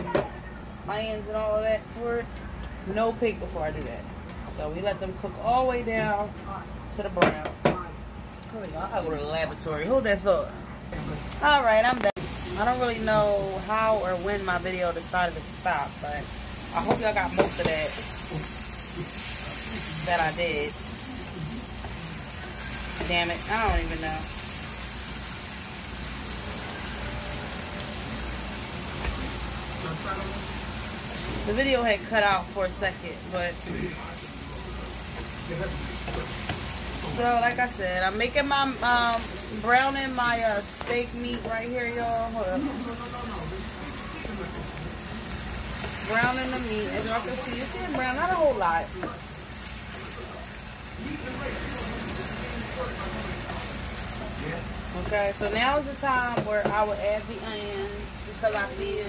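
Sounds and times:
steak sizzling in a frying pan: 0:11.0 - 0:59.0.

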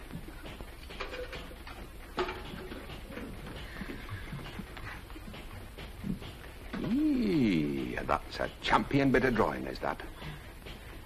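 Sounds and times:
film soundtrack hiss and hum: 0:00.0 - 0:11.0.

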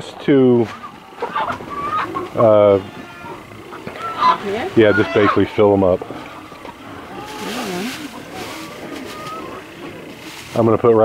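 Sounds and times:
plastic sack rustling: 0:06.9 - 0:11.0.

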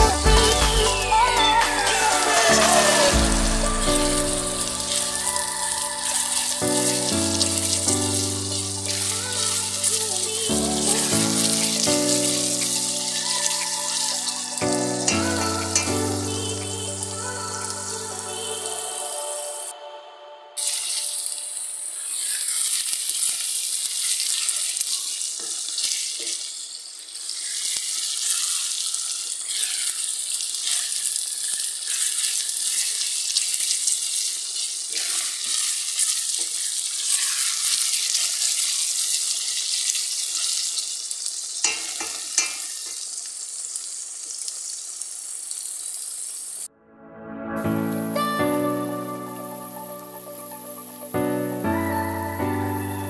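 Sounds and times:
food sizzling in oil: 0:00.0 - 0:19.7, 0:20.6 - 0:46.7, 0:47.6 - 0:53.0.

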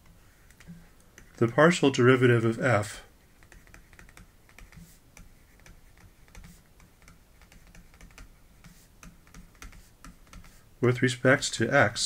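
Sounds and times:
stylus clicking on pen tablet: 0:00.4 - 0:01.6, 0:03.4 - 0:10.6.

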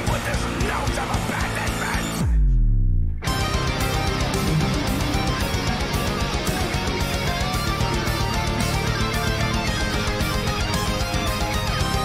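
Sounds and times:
electric guitars: 0:03.2 - 0:12.0.

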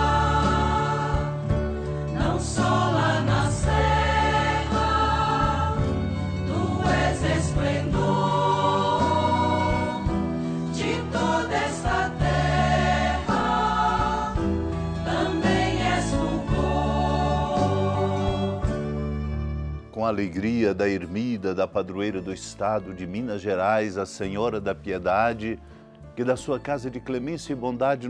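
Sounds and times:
choir singing a hymn: 0:00.0 - 0:19.2
instrumental accompaniment with bass: 0:00.0 - 0:21.3.

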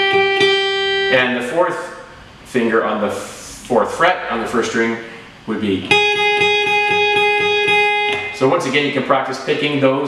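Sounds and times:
acoustic guitar picking one note: 0:05.9 - 0:08.4.

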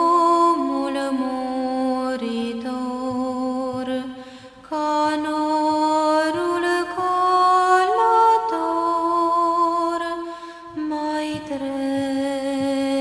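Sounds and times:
slow chant-like music: 0:00.0 - 0:13.0.

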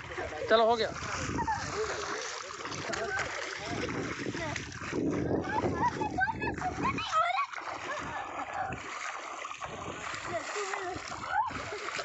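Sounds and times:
feet splashing through water: 0:00.0 - 0:12.0.

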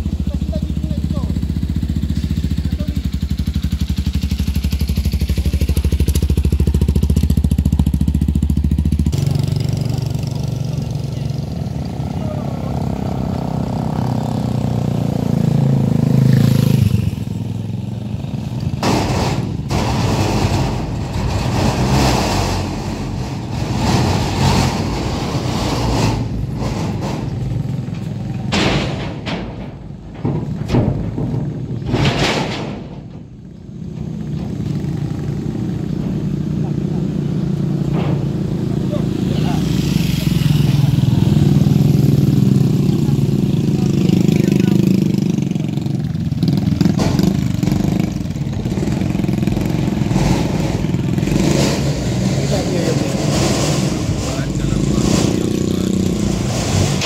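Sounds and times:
motorcycles riding past: 0:00.0 - 0:19.3, 0:33.8 - 0:57.0
engine drone: 0:00.0 - 0:57.0
road roller engine: 0:00.0 - 0:57.0
background voices: 0:52.3 - 0:57.0.

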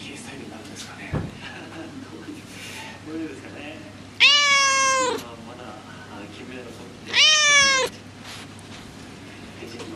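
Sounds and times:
cat meowing: 0:04.2 - 0:05.3, 0:07.1 - 0:08.0.

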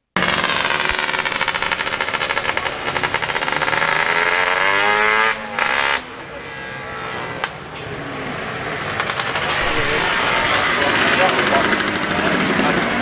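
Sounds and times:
motorcycle engine revving: 0:00.1 - 0:13.0.

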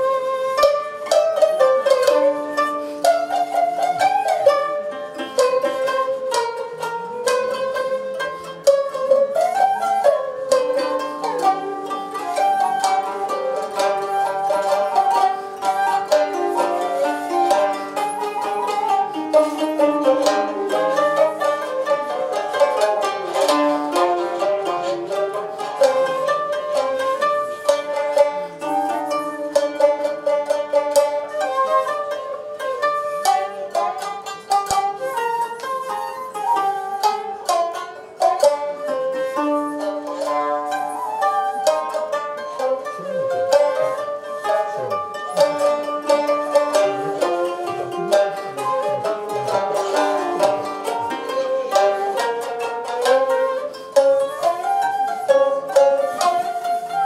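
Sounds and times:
held flute tone: 0:00.0 - 0:57.0
plucked string notes: 0:00.0 - 0:57.0.

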